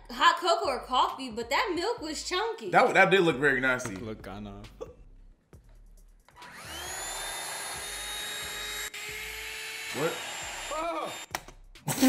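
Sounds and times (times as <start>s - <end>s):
small electric motor whining: 6.4s - 11.3s.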